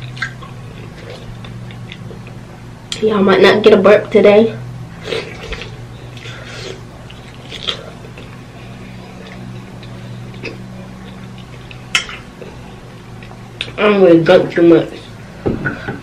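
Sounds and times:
person chewing: 0.0 - 3.0, 5.0 - 13.8
steady low hum: 0.0 - 16.0.

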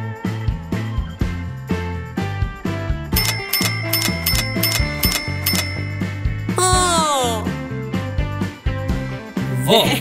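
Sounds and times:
coins clinking into glass jar: 3.2 - 6.2.

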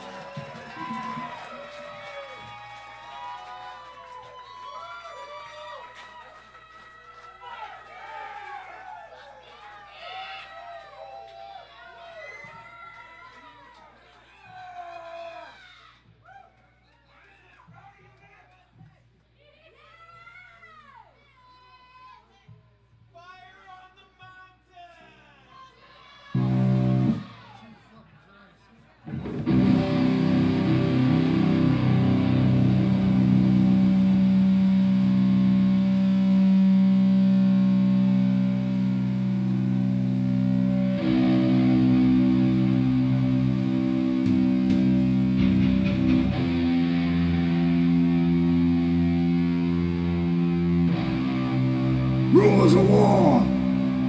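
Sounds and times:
distorted electric guitar chords: 26.4 - 27.2, 29.1 - 54.0.

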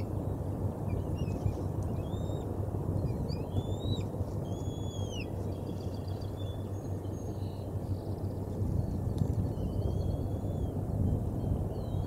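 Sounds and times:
steady low rumble: 0.0 - 12.0
high whistled bird calls: 3.1 - 5.3.

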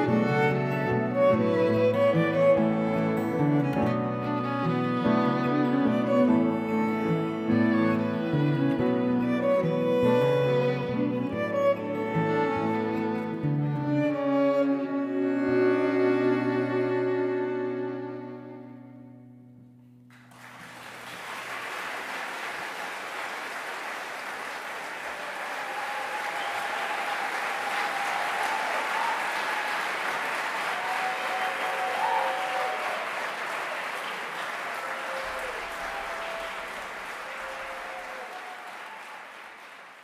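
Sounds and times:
audience applauding: 0.0 - 14.5, 20.1 - 40.0.

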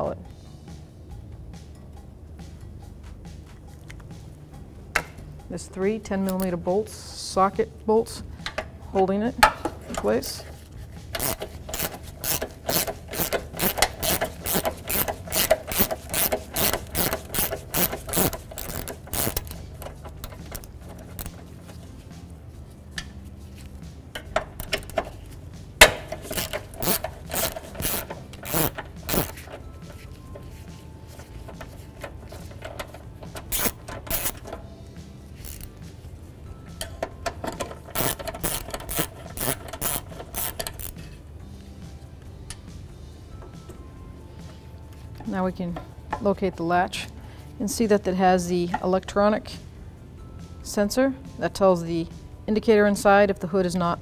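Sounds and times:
hand ratchet clicking: 11.1 - 21.8, 24.1 - 30.4, 31.1 - 34.6, 35.4 - 35.8, 36.8 - 41.1.

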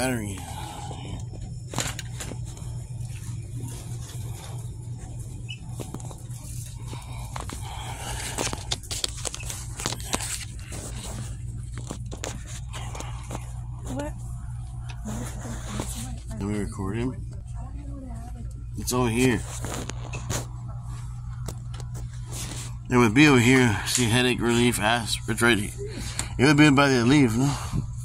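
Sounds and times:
steady low hum: 0.0 - 28.0
clicks and rustles of packaging: 7.2 - 13.4.

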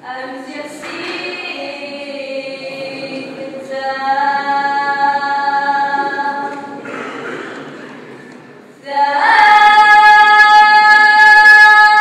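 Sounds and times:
women singing a capella: 0.0 - 6.8, 8.8 - 12.0.

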